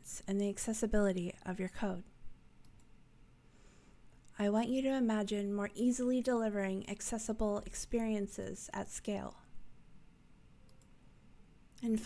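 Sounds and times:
woman speaking: 0:00.0 - 0:02.1, 0:04.3 - 0:09.5, 0:11.8 - 0:12.0
faint clicks: 0:02.6 - 0:03.0, 0:10.6 - 0:11.0.

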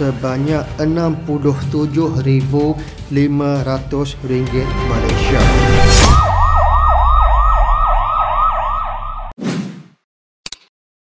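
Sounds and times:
siren yelping: 0:06.0 - 0:09.4.

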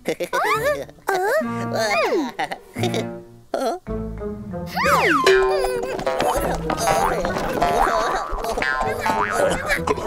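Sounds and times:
background music: 0:00.0 - 0:10.0
squeaky cartoon voices: 0:00.3 - 0:02.5, 0:04.7 - 0:05.4
springy boing glides: 0:04.8 - 0:09.8.

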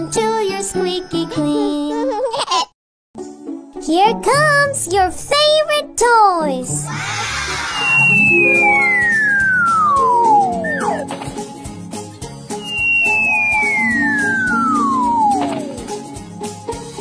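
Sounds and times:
children's background music: 0:00.0 - 0:02.2, 0:03.2 - 0:17.0
falling slide-whistle glides: 0:07.1 - 0:11.1, 0:12.6 - 0:16.0.

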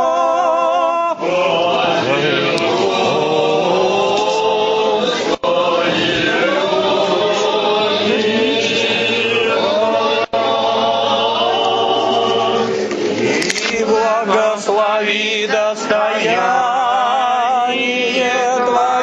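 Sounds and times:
liturgical chant by several voices: 0:00.0 - 0:19.0.

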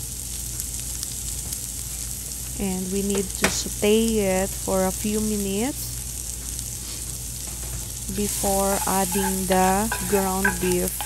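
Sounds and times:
onions sizzling in a frying pan: 0:00.0 - 0:11.0.

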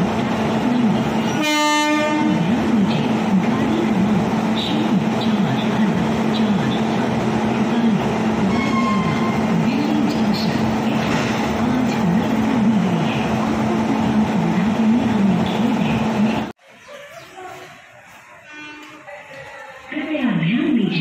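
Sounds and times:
electric locomotive humming: 0:00.0 - 0:16.5.

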